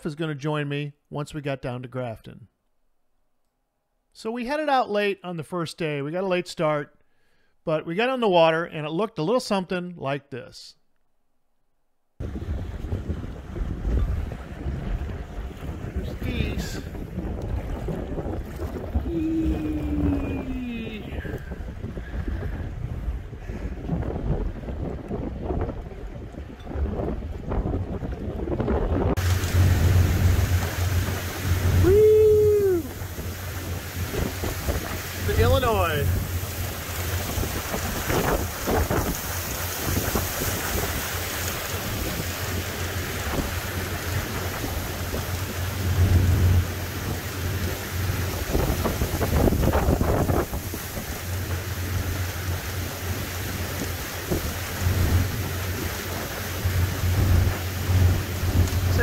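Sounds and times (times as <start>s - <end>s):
boat engines droning: 12.2s - 23.4s, 29.2s - 59.0s
water rushing along hull: 12.2s - 59.0s
wind buffeting microphone: 12.2s - 59.0s.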